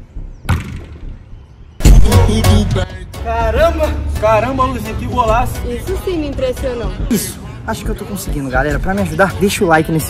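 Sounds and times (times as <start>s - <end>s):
music: 0.0s - 10.0s
football kicks: 0.5s - 1.1s.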